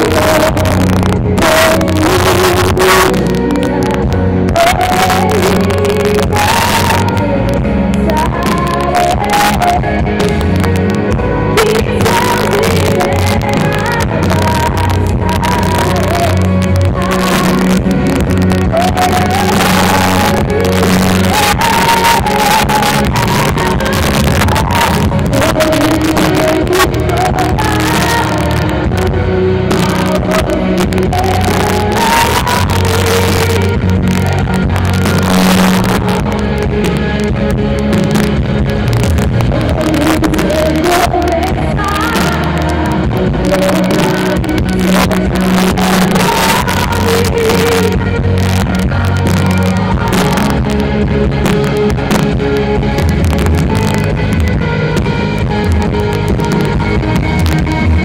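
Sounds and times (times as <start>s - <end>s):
drums: 0.0s - 58.0s
electric bass: 0.0s - 58.0s
keyboard playing: 0.0s - 58.0s.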